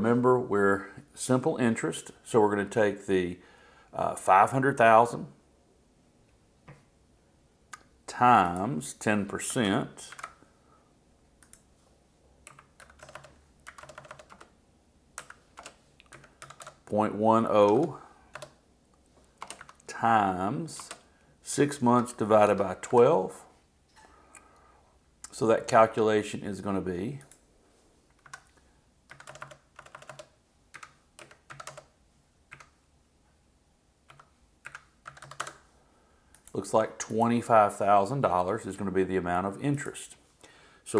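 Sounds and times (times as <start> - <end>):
computer keyboard typing: 10.1 - 10.4, 11.4 - 11.7, 12.4 - 14.6, 15.2 - 17.0, 17.6 - 18.6, 19.3 - 19.9, 20.7 - 21.1, 28.2 - 31.9, 32.5 - 32.8, 34.1 - 35.6.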